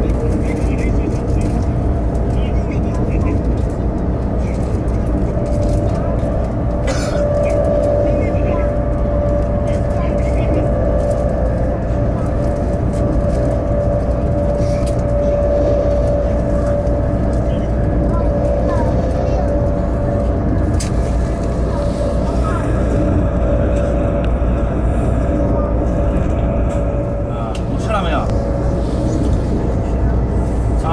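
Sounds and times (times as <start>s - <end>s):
constant hum: 0.0s - 30.9s
train rumbling at speed: 0.0s - 30.9s.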